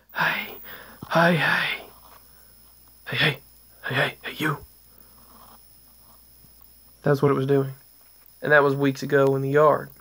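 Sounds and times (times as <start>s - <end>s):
high-pitched whine: 0.0s - 4.8s
faint steady hiss: 0.0s - 10.0s.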